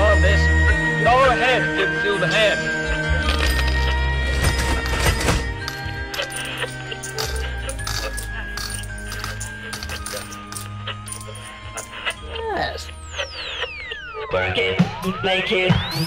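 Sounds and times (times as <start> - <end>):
clicking clinking percussion: 3.2 - 12.2
held synth tones: 5.5 - 16.0.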